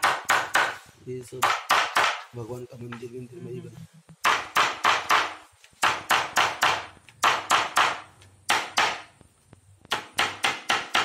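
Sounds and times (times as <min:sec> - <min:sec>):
hammer knocking on block: 0:00.0 - 0:00.8, 0:01.4 - 0:02.3, 0:04.2 - 0:09.1, 0:09.9 - 0:11.0.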